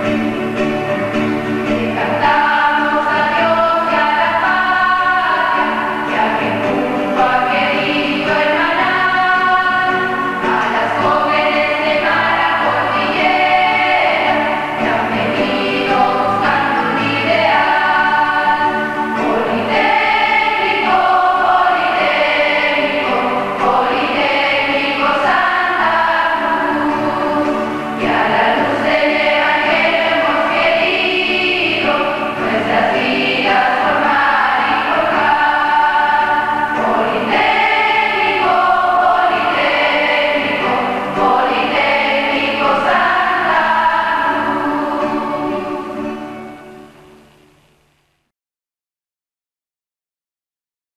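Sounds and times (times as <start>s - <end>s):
girls choir singing a hymn: 0.0s - 47.0s.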